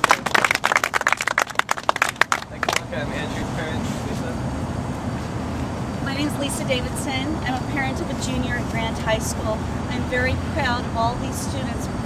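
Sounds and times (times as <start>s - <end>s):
crowd clapping: 0.0s - 3.0s
low background rumble: 0.0s - 12.0s.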